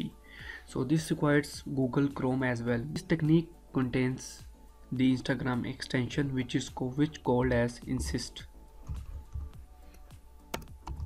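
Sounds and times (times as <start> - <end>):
faint background music: 0.0 - 11.0
keyboard keystrokes: 10.5 - 11.0.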